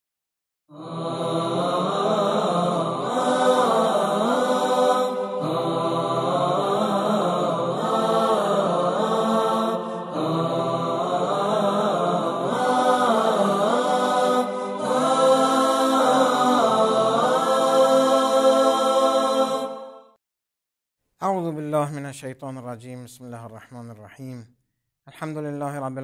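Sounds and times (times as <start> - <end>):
chanted voices music: 0.7 - 20.2.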